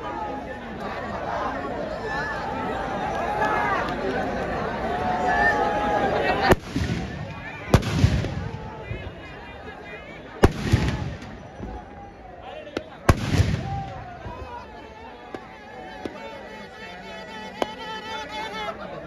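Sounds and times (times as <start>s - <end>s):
crowd chatter: 0.0s - 19.0s
loud bangs with rumbling tail: 6.5s - 8.7s
firecrackers bursting: 6.5s - 9.0s, 10.4s - 11.8s, 12.8s - 14.2s.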